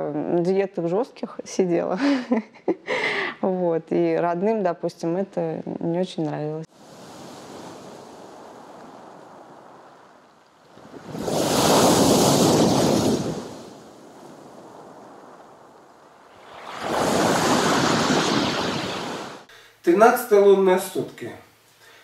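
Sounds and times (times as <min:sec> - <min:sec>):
waves breaking on pebble beach: 0:06.7 - 0:19.5
wave crashing: 0:06.8 - 0:19.5.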